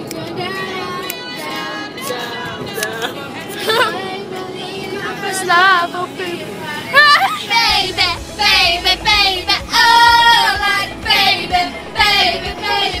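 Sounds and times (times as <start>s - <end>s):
girls singing a pop song: 0.0s - 13.0s
low rumble: 7.5s - 13.0s.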